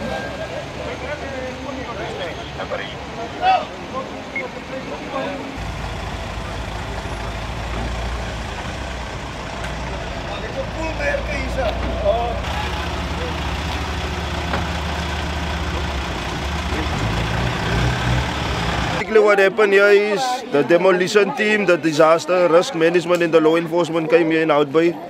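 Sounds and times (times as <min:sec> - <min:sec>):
faint voices: 0:00.0 - 0:17.8
large vehicle engine idling: 0:00.0 - 0:19.0.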